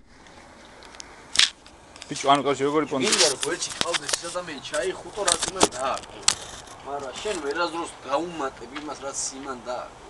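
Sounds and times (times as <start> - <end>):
camera handling noise: 0.2 - 2.2, 3.0 - 7.5
rub against microphone: 2.7 - 8.0.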